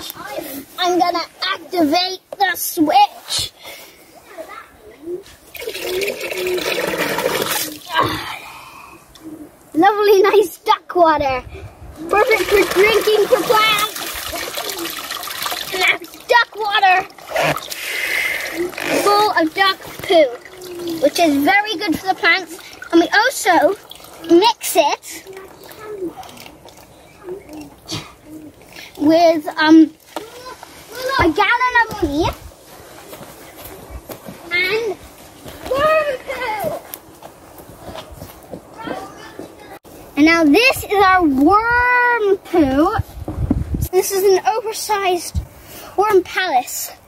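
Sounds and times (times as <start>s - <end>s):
water splashing into plastic bucket: 5.5s - 8.1s, 12.0s - 24.4s
footsteps on grass: 30.0s - 40.1s.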